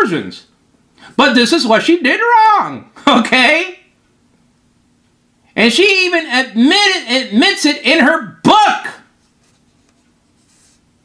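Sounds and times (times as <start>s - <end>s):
faint steady hum: 0.0s - 11.0s
faint rustling: 9.2s - 10.9s.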